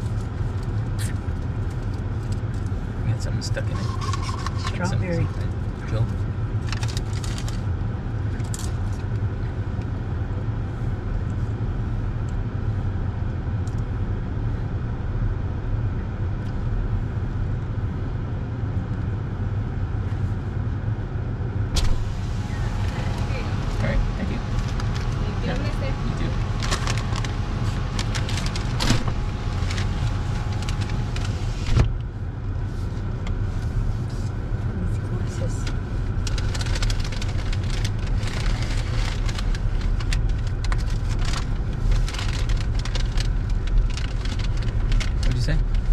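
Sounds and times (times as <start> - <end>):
car engine idling: 0.0 - 9.9, 21.5 - 45.9
outside noise: 0.0 - 45.9
paper bag rustling: 22.0 - 31.7, 36.2 - 45.4.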